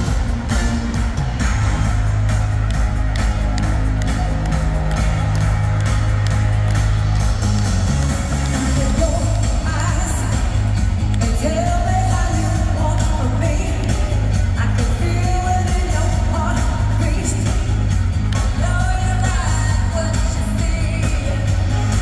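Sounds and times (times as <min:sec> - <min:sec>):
heavy bass line: 0:00.0 - 0:22.0
steady drum beat: 0:00.0 - 0:22.0.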